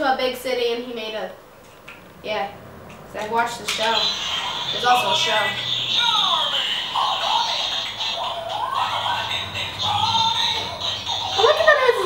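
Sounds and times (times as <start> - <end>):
tinny toy speaker melody: 3.8 - 12.0.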